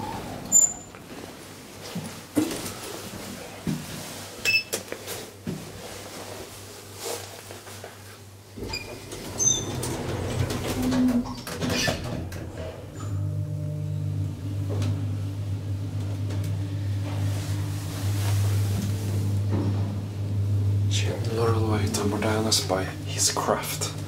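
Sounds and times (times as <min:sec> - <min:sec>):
elevator door closing clunks: 0:08.6 - 0:24.0
elevator machine hum: 0:08.6 - 0:24.0.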